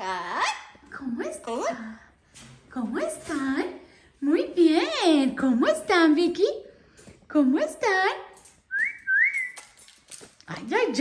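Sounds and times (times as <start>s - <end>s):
parrot whistle: 8.7s - 9.7s.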